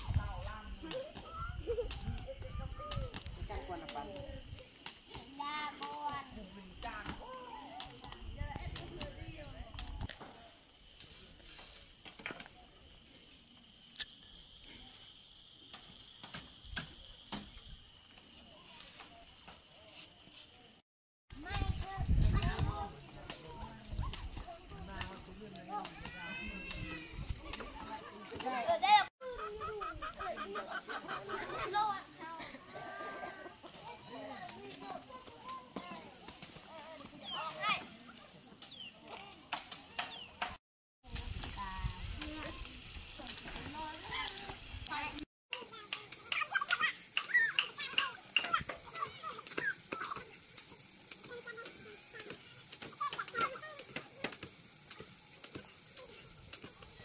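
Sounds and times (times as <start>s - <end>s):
children calling and playing: 0.0s - 57.0s.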